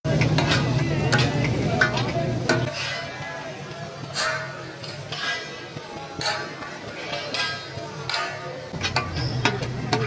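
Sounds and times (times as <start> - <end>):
metal spatula scraping: 0.1 - 10.0.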